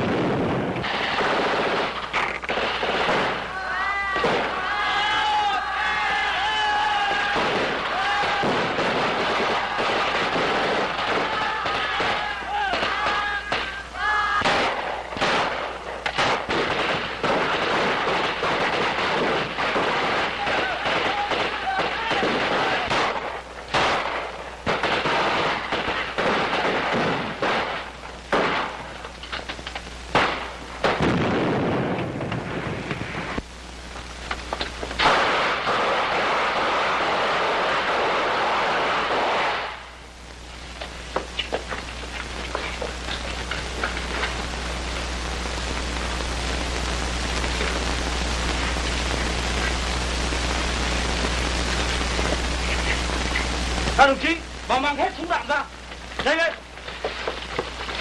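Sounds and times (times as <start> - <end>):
long rumbling explosion: 0.0 - 1.9, 30.2 - 33.4
rapid gunshots: 0.0 - 3.5, 7.2 - 13.7, 14.4 - 28.8
steady hiss and hum: 0.0 - 58.0.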